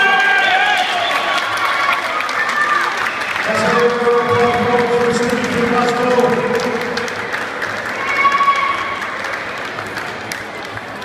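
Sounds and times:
crowd cheering and applauding: 0.0 - 11.0.

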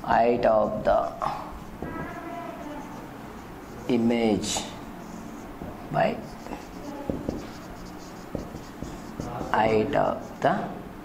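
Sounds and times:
marker writing on whiteboard: 0.0 - 10.6
marker tip tapping board: 0.6 - 3.0, 3.6 - 10.4.

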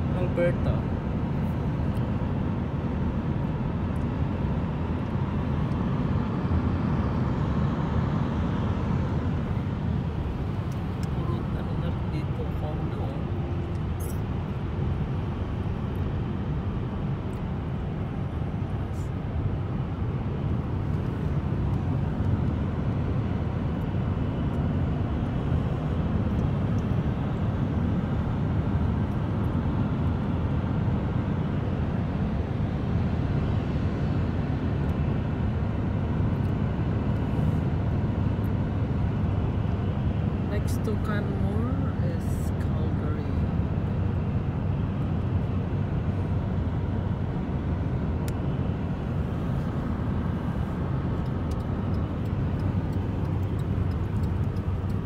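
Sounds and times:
car road and engine rumble: 0.0 - 55.0.

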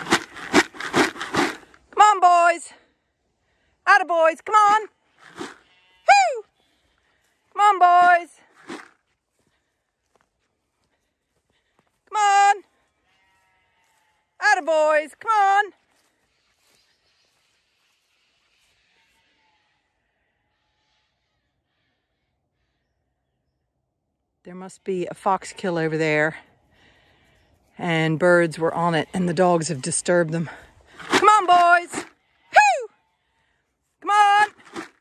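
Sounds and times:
quavering bleating calls: 4.6 - 8.2, 12.2 - 14.6, 18.6 - 22.3, 31.2 - 34.5.

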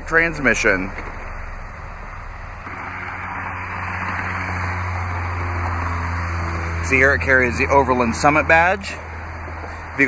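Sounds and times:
car engine idling: 0.0 - 10.0
rush of noise: 0.8 - 10.0.

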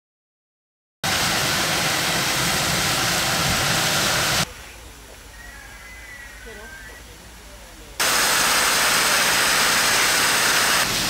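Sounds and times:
fire hose spraying hiss: 1.0 - 4.5, 8.0 - 11.0.

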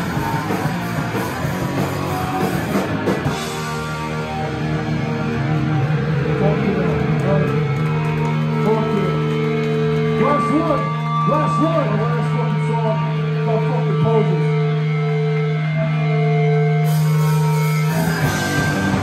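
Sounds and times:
punk rock band playing: 0.0 - 19.0.

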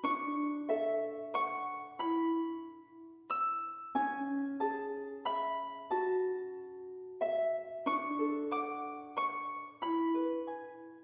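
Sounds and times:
plucked notes music: 0.0 - 11.0.

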